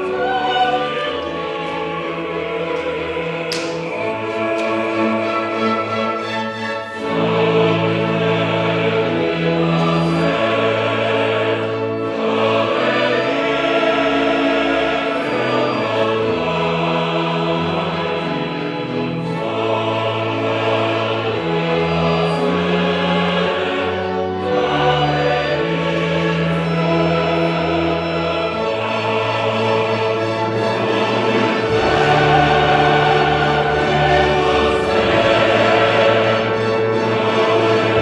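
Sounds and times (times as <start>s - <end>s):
opera chorus with orchestra: 0.0s - 38.0s.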